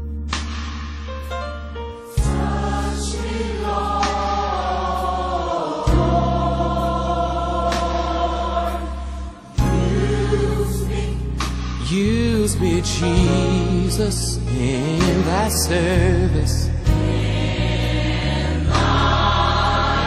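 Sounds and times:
bass-heavy band accompaniment: 0.0s - 20.0s
gospel choir singing: 2.1s - 20.0s.

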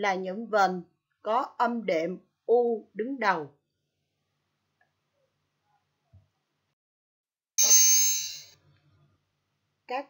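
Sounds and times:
bright ringing chime: 7.6s - 8.6s.

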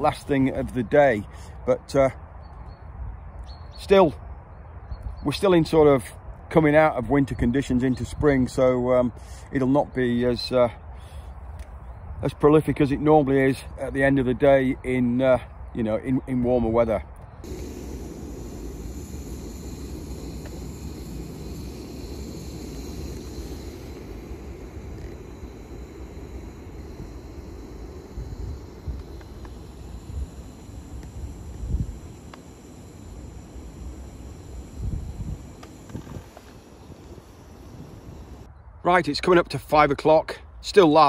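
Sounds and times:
wind rumbling on microphone: 17.4s - 38.8s.

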